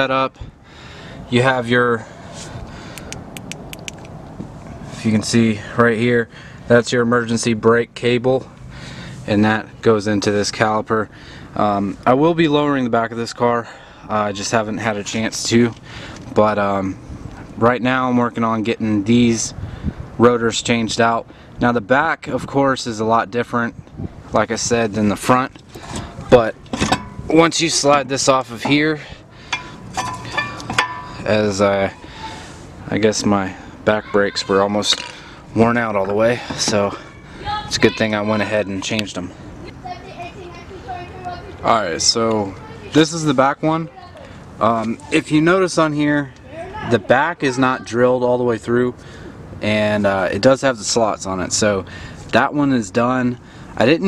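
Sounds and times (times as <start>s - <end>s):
light sharp clicks: 2.9s - 4.2s
metal brake parts clinking: 25.8s - 28.8s, 29.5s - 31.3s.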